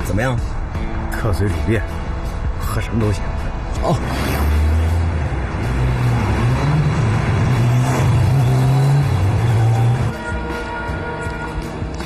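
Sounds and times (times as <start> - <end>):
background music with bass line: 0.0 - 12.0.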